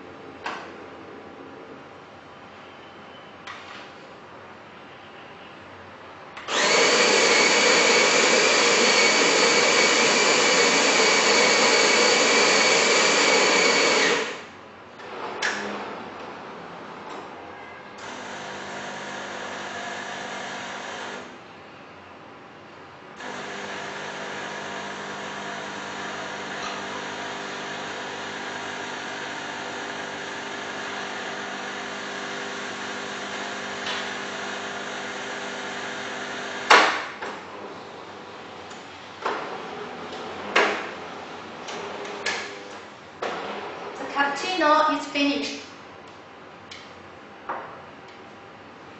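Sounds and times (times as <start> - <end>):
coffee grinder grinding beans: 6.5 - 14.5
coffee machine pump humming: 6.5 - 14.5, 23.2 - 36.7.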